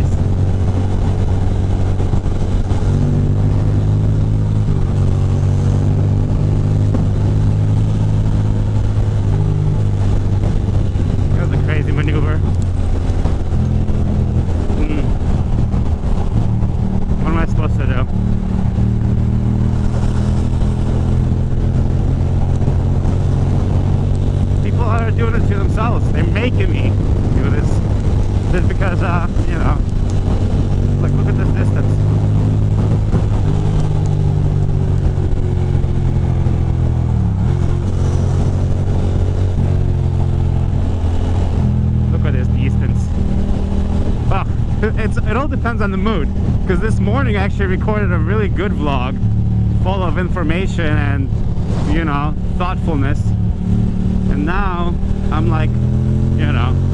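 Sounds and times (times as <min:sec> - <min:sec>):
wind noise on microphone: 0:00.0 - 0:49.8, 0:50.7 - 0:56.9
motorcycle engine cruising: 0:00.0 - 0:56.9.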